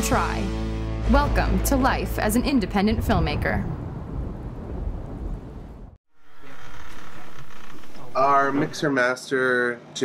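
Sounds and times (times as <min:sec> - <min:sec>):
rumbling thunder: 0:02.4 - 0:06.0.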